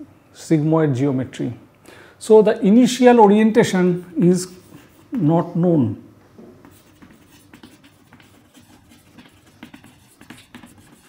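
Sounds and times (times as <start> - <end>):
chalk scratching on chalkboard: 4.4 - 5.3, 6.6 - 11.0.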